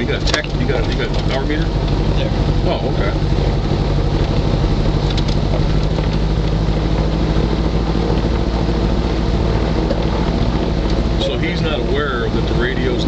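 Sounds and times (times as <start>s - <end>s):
aircraft engine and propeller drone: 0.0s - 13.0s.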